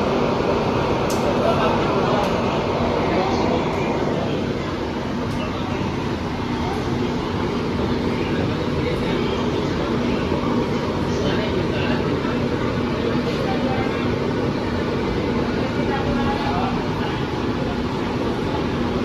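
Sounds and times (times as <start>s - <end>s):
constant low hum: 0.0s - 19.0s
train rolling rumble: 0.0s - 19.0s.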